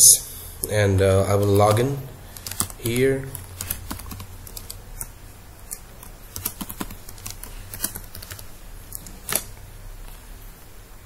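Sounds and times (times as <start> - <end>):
keyboard typing: 0.9 - 9.5.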